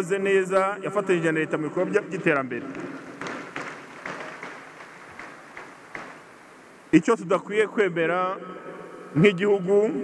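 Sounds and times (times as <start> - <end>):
audience applause: 2.5 - 6.4.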